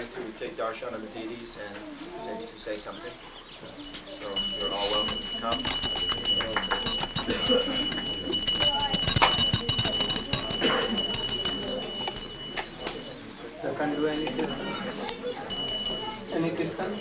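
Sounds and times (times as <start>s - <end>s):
murmur of voices: 0.0s - 17.0s
bell ringing rapidly: 3.8s - 17.0s.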